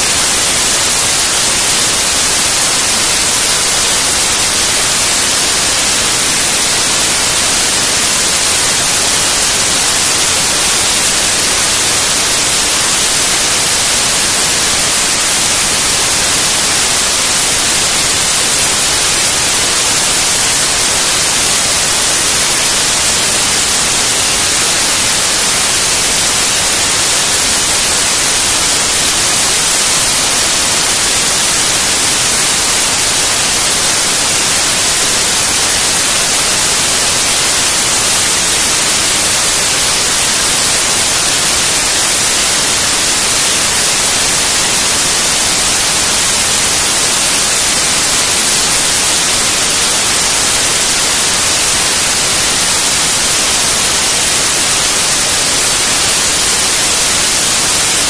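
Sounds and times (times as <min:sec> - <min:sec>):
loud static hiss: 0:00.0 - 0:58.0.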